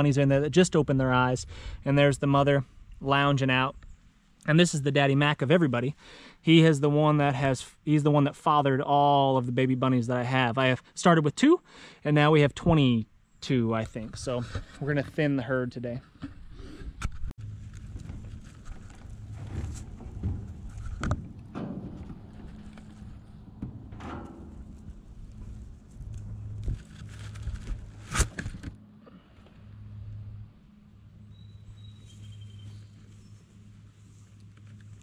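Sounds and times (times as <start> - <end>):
low steady hum: 17.1 - 35.0.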